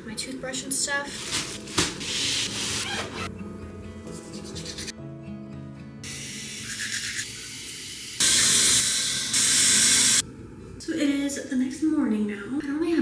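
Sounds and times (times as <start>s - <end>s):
aerosol spray can hissing: 2.0s - 2.8s, 6.1s - 10.2s.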